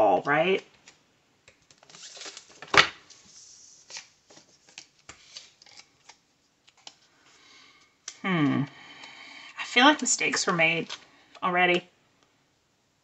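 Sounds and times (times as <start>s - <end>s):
paper rustling: 1.6s - 7.4s.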